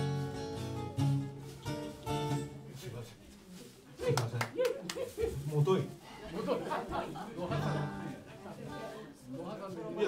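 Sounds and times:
guitar song: 0.0s - 2.8s, 7.4s - 9.0s
audience clapping: 4.0s - 5.2s.

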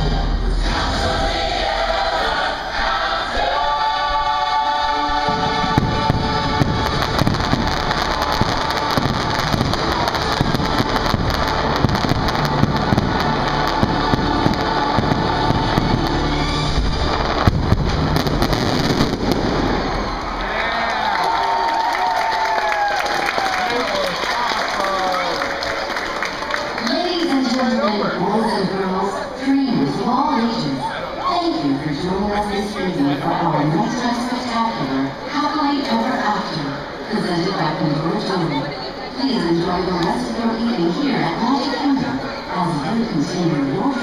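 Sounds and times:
show music with choir: 0.0s - 20.3s
fireworks crackling and popping: 5.2s - 20.6s
fireworks low booms: 5.3s - 20.4s
crowd cheering and whooping: 5.7s - 26.8s.

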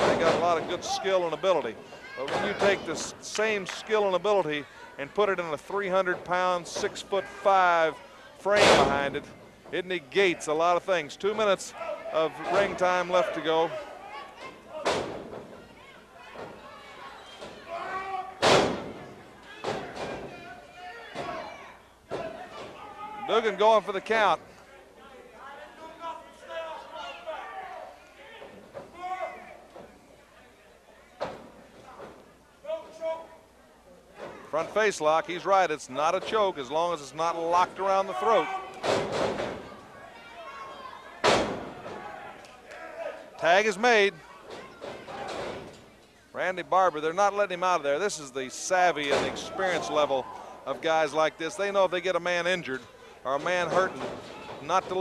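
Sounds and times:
crowd voices: 0.0s - 55.0s
body slamming onto wrestling ring: 18.4s - 19.0s.

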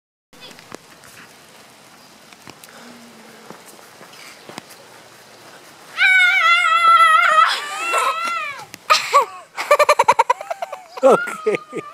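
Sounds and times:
faint hiss: 0.4s - 11.9s
girl screeching and yelling: 5.9s - 9.4s, 10.9s - 11.9s.

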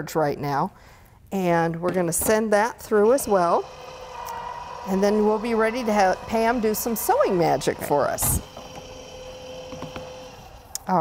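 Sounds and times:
faint steady hum: 2.9s - 10.9s.

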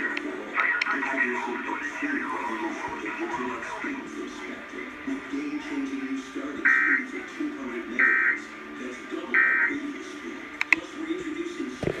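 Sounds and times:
voices from laptop speakers: 0.0s - 12.0s
sharp clicks: 10.6s - 10.9s.

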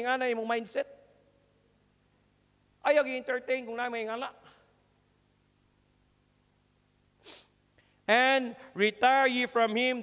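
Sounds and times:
short breathy inhale: 7.2s - 8.0s.

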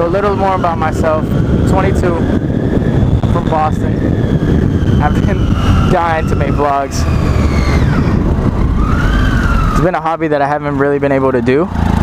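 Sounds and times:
thin whine: 0.0s - 10.1s
motorcycle engine running: 0.0s - 12.0s
wind rumble on microphone: 0.0s - 12.0s.

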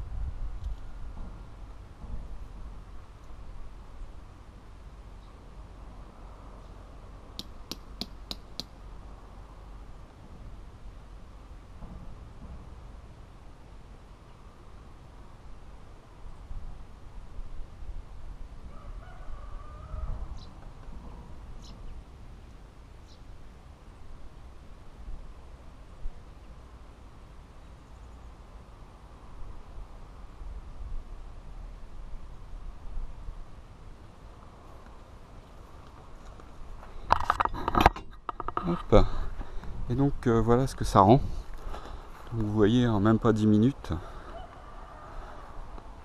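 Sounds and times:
tent peg being hammered: 7.4s - 8.8s
wind buffeting microphone: 36.6s - 42.6s.

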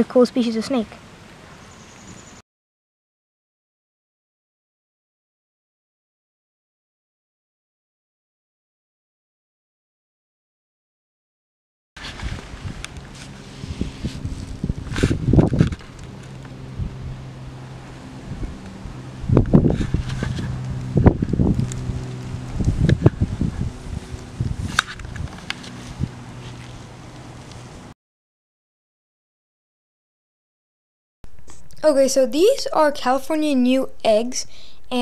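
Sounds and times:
steady low hum: 12.0s - 28.0s
rustling bumps on microphone: 19.4s - 21.9s.

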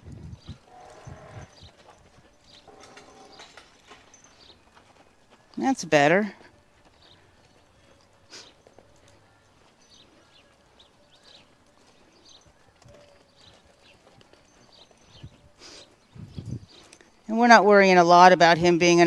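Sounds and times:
horse hoofbeats on sand: 0.0s - 19.0s.

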